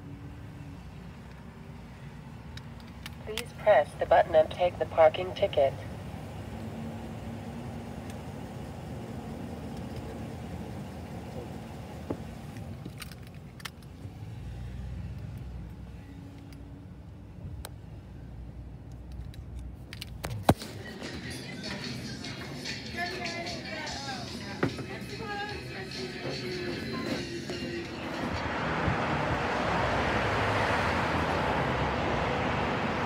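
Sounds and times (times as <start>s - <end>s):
car engine running inside cabin: 3.2s - 13.0s
background music: 20.6s - 29.3s.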